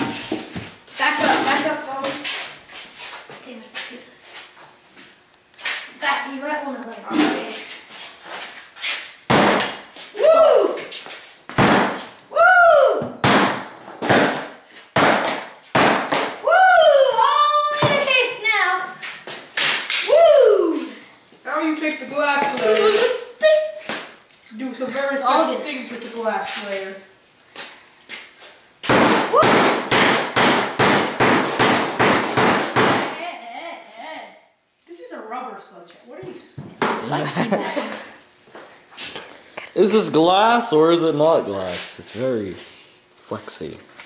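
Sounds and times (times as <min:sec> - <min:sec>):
hammer smashing device on wood: 0:09.3 - 0:09.8, 0:11.6 - 0:12.0, 0:13.2 - 0:16.4, 0:28.8 - 0:33.2.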